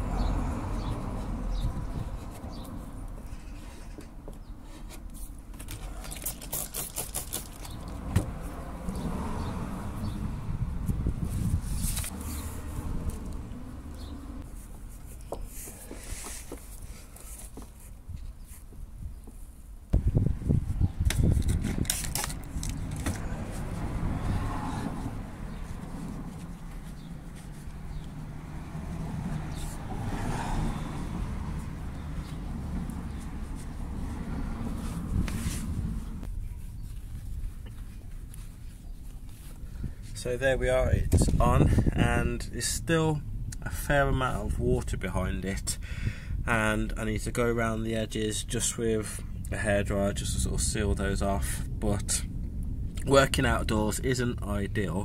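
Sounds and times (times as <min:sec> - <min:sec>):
outdoor background rumble: 0:00.0 - 0:55.0.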